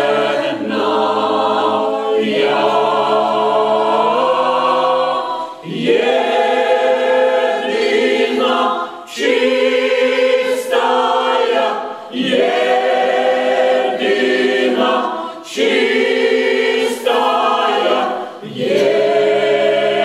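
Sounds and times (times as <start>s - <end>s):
mixed choir singing unaccompanied: 0.0s - 20.0s.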